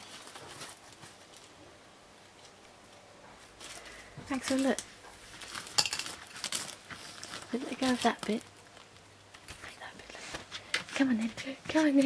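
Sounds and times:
sharp foil crackles: 0.0 - 1.5, 3.6 - 12.0
foil balloon crinkling: 0.0 - 1.6, 3.6 - 12.0.

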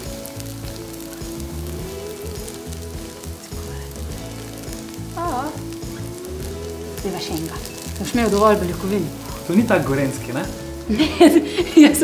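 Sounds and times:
tofu sizzling in a pan: 0.0 - 12.0.

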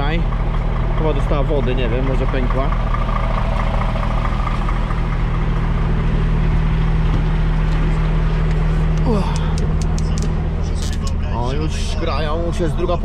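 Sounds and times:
diesel engine idling: 0.0 - 13.0.

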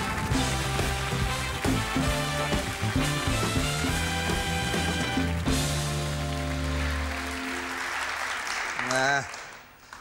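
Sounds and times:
steady drum beat: 0.0 - 6.2
band playing upbeat tune: 0.0 - 7.8
bass line: 0.2 - 6.8.

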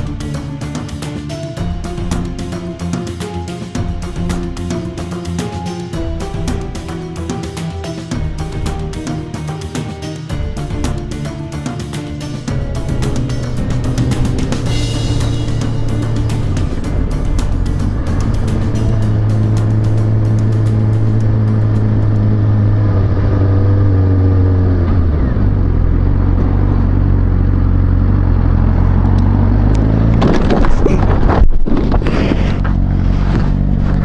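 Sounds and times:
motorcycle engine running: 0.0 - 31.0, 31.8 - 34.0
motorcycle crash: 30.0 - 34.0.

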